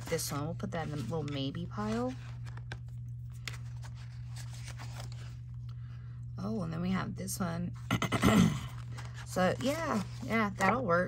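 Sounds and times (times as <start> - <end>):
paper flipping and rustling: 0.0 - 5.7, 8.7 - 10.9
steady low hum: 0.0 - 11.0.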